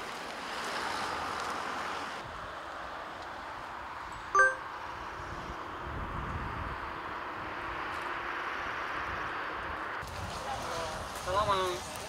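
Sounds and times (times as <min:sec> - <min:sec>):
steady outdoor hiss: 0:00.0 - 0:12.0
short bright ding: 0:04.4 - 0:04.6.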